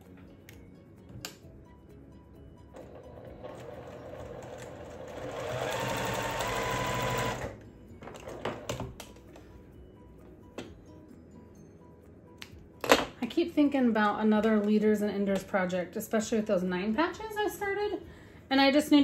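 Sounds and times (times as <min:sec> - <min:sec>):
sewing machine whine: 0:02.7 - 0:07.6.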